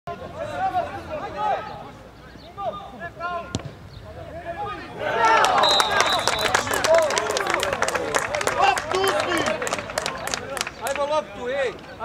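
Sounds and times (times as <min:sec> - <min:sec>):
voices calling out: 0:00.1 - 0:12.0
football being kicked: 0:03.5 - 0:03.9
crowd cheering and clapping: 0:05.0 - 0:11.2
short high whistle: 0:05.6 - 0:06.6.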